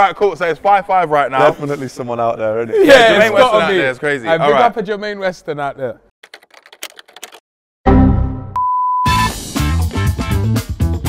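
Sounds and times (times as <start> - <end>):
keyboard key clicks: 6.2 - 7.4.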